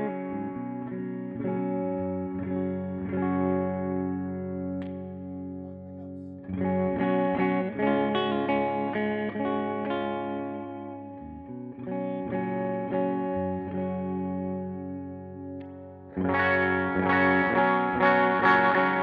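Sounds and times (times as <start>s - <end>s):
clean electric guitar chords: 0.0s - 19.0s.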